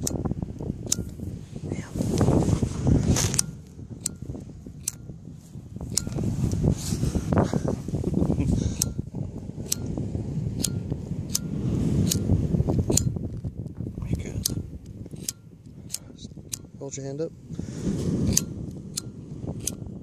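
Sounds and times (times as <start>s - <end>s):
lighter clicking: 0.8s - 1.2s, 10.6s - 13.2s, 18.2s - 19.8s.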